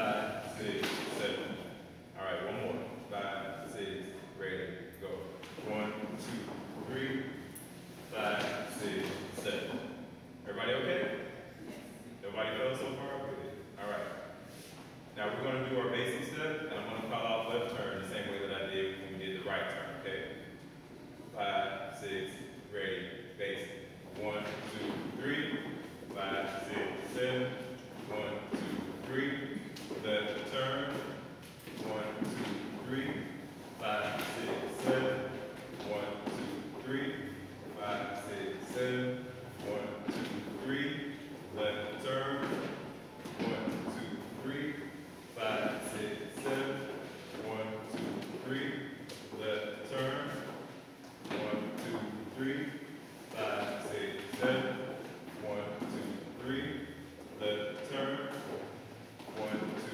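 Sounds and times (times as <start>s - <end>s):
man talking: 0.0s - 11.5s, 12.1s - 14.5s, 15.1s - 20.6s, 21.3s - 50.6s, 51.2s - 59.9s.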